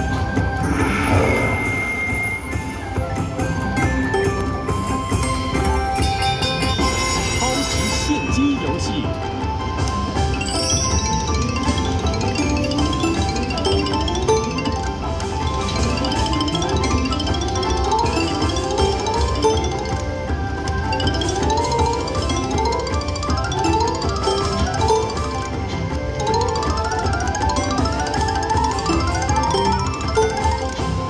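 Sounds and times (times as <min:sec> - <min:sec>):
slot machine bonus music: 0:00.0 - 0:31.0
chiming bell-like notes: 0:00.6 - 0:20.0.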